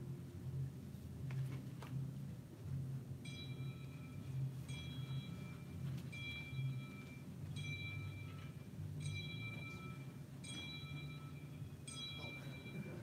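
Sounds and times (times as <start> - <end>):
steady low hum: 0.0 - 13.0
bell-like chime strikes: 3.2 - 13.0.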